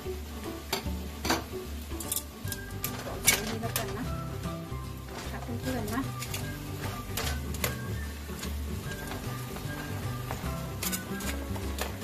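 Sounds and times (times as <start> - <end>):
background music: 0.0 - 12.0
metal tongs clicking on frying pan: 0.7 - 4.0, 5.9 - 6.5, 7.1 - 9.2, 10.3 - 12.0.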